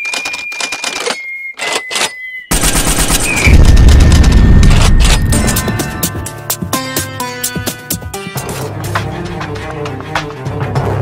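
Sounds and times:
rapid gunfire-like clatter: 2.5 - 5.4
deep explosion boom: 3.3 - 5.3.

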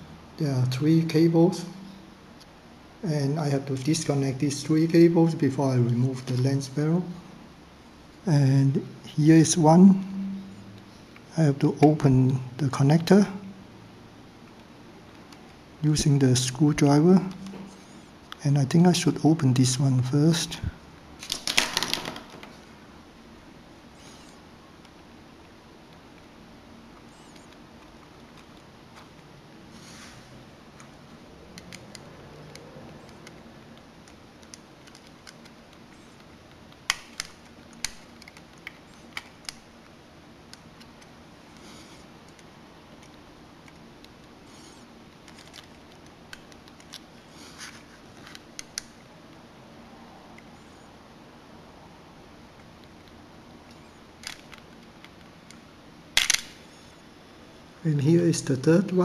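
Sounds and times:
small tools clicking and scratching: 31.5 - 39.9, 40.5 - 49.0.

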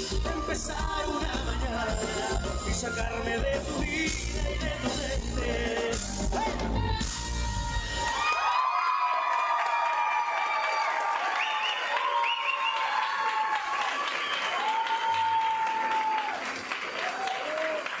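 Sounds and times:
live band playing: 0.0 - 8.2
crowd applauding and cheering: 6.0 - 18.0.

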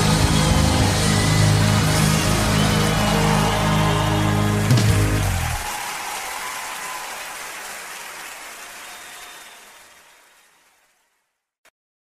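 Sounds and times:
crowd applause: 0.0 - 11.2.

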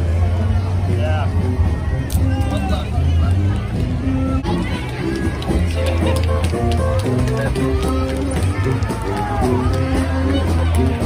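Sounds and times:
crowd chatter: 0.0 - 11.0
brass band playing held notes: 5.8 - 11.0.

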